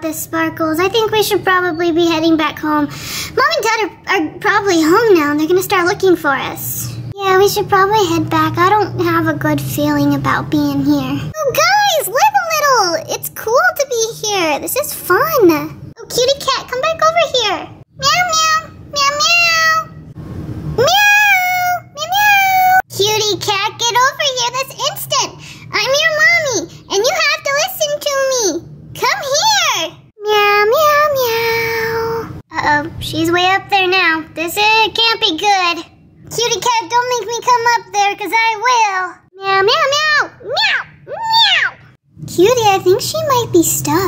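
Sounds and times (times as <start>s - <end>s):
child imitating cat meows: 39.8s - 41.9s.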